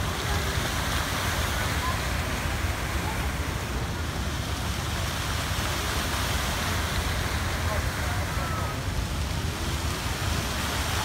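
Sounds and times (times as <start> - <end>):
fountain water splashing: 0.0 - 11.0.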